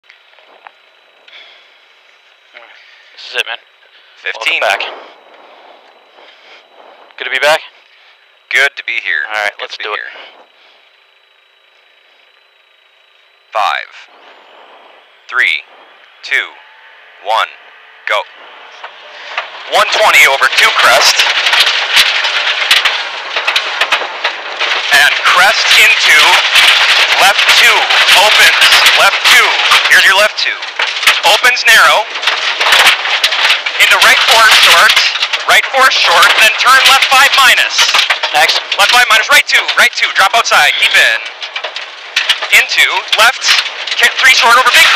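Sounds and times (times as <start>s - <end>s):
high whine: 0.0s - 44.9s
car engine running hard: 13.3s - 30.0s
stones rattling against car underside: 18.7s - 44.9s.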